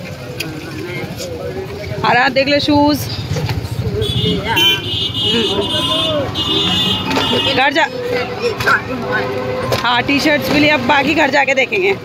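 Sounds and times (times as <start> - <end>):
busy street traffic: 0.0 - 12.0.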